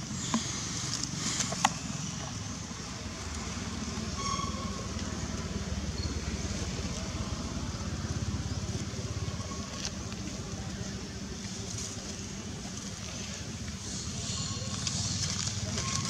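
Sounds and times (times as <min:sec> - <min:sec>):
steady low rumble: 0:00.4 - 0:15.8.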